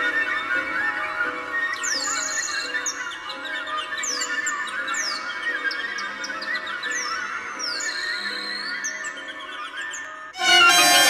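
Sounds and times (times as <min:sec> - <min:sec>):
orchestral music: 0:10.4 - 0:11.0.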